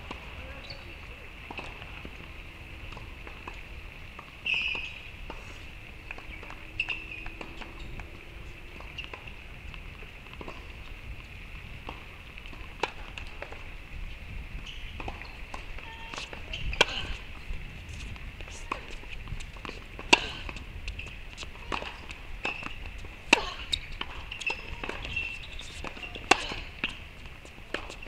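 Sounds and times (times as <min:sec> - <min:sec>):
footsteps: 0:15.5 - 0:23.2
ball bounces: 0:18.6 - 0:27.0.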